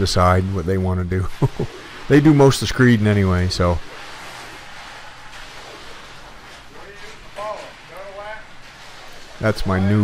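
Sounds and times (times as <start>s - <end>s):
scraping wet concrete: 0.0s - 10.0s.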